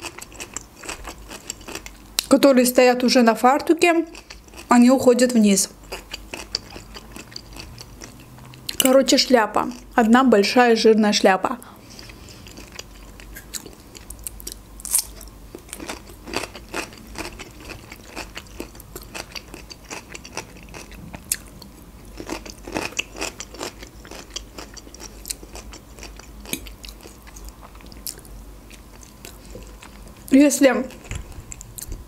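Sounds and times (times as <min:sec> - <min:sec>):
chewing and biting food: 0:05.8 - 0:08.8, 0:12.0 - 0:30.2.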